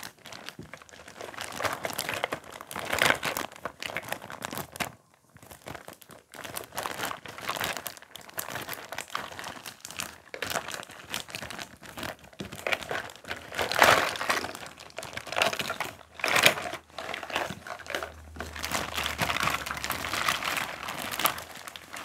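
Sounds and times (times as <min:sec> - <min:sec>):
plastic bag crinkling: 0:00.0 - 0:22.0.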